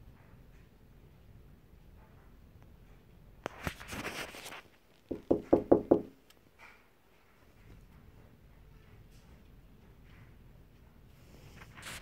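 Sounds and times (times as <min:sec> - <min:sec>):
brief rustle: 0:03.4 - 0:04.8, 0:11.4 - 0:12.0
ringing knocks on hard surface: 0:05.1 - 0:06.2.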